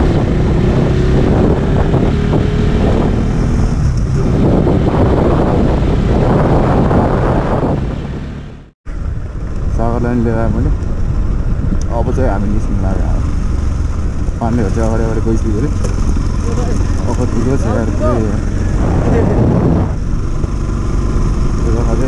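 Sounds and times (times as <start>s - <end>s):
motorcycle engine running: 0.0s - 22.0s
wind rushing over microphone: 0.0s - 22.0s.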